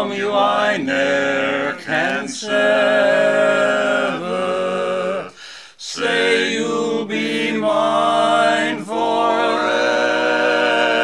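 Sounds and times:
men singing a cappella harmony: 0.0 - 11.0.

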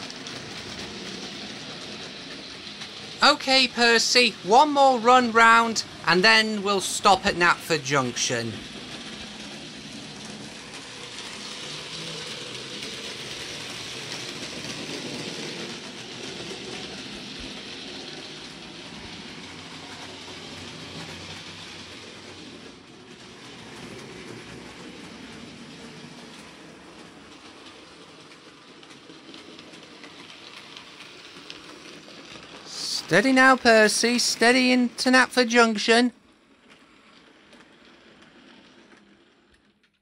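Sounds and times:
model train whirring on track: 0.0 - 40.0.

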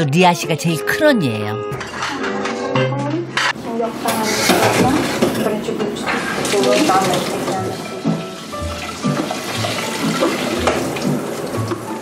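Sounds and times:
tap water running into sink: 6.0 - 12.0.

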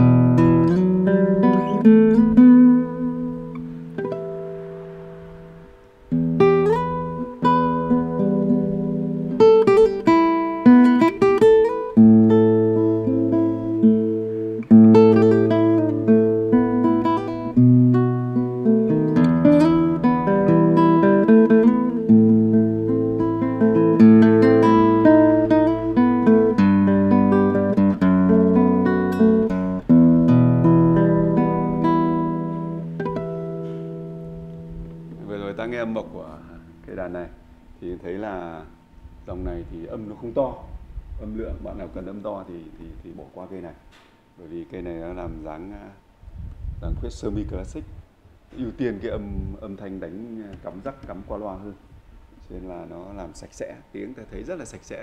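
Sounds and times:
classical guitar playing: 0.0 - 39.2.

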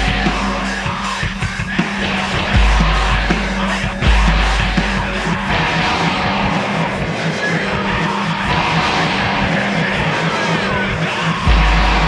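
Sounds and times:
metal band playing: 0.0 - 12.0.

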